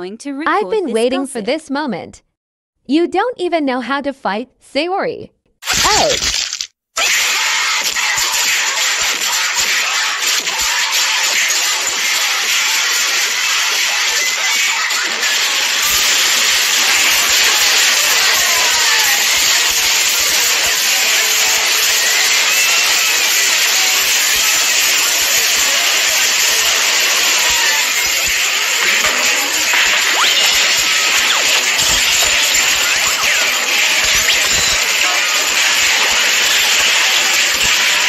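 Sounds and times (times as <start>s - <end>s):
cartoon brawl scuffling and hits: 5.6s - 12.2s, 15.3s - 38.0s
music: 7.0s - 38.0s.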